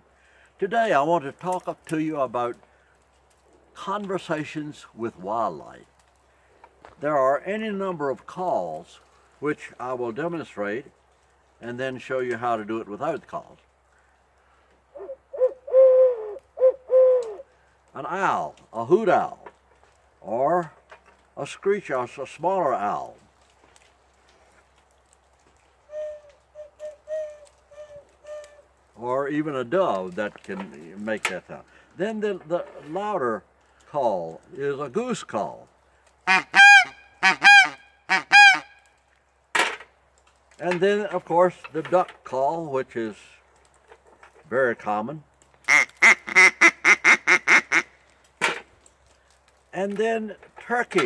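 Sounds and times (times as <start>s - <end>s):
owl call hoots: 14.9s - 17.5s, 25.9s - 28.7s
duck call quacks: 36.3s - 38.7s, 45.7s - 47.9s.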